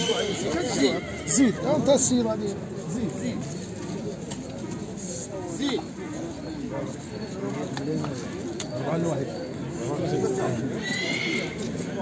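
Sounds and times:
horse neighing: 0:00.0 - 0:01.9, 0:10.7 - 0:11.7
men talking: 0:00.0 - 0:10.8.

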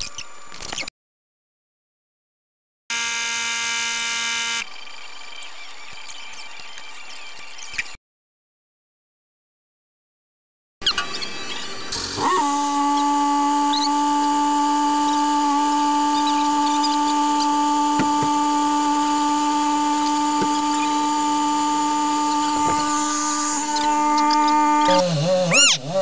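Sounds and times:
motor whine: 0:02.9 - 0:05.9, 0:10.9 - 0:26.0.

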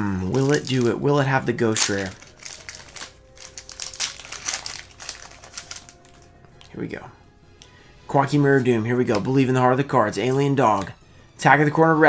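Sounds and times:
foil wrapper crinkling: 0:00.3 - 0:06.4.

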